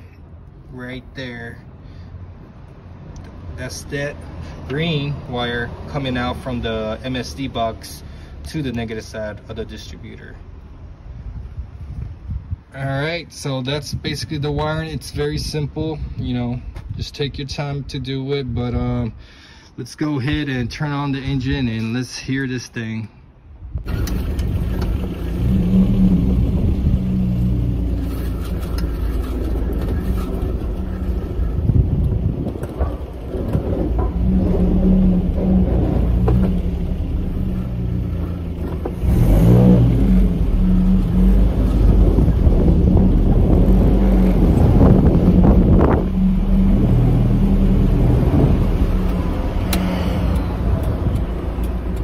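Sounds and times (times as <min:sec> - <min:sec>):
car engine revving: 0:23.9 - 0:52.0.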